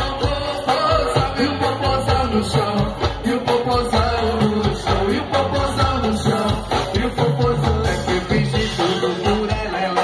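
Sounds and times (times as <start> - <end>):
live band carnival music: 0.0 - 10.0.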